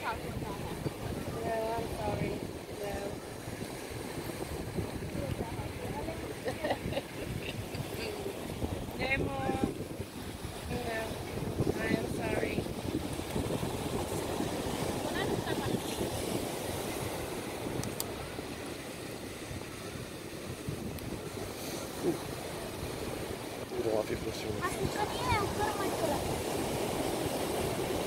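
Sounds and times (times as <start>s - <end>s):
voices talking: 0.0s - 3.6s, 4.2s - 9.8s, 10.6s - 12.8s, 14.0s - 16.0s, 23.6s - 26.5s
surf breaking on beach: 0.0s - 28.0s
wind buffeting microphone: 0.0s - 28.0s.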